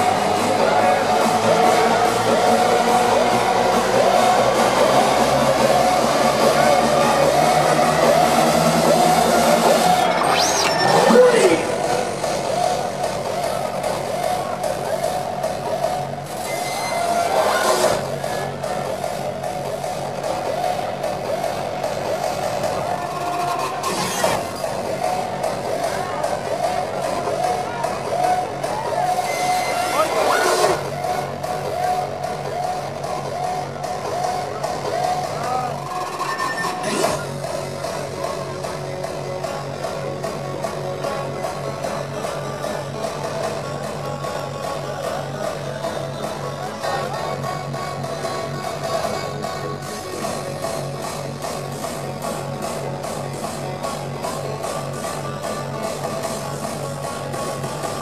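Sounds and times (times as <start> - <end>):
loud hardstyle dance music: 0.0 - 58.0.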